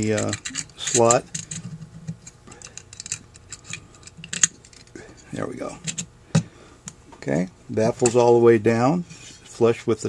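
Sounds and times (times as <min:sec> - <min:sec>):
light metal scraping: 0:09.0 - 0:09.6.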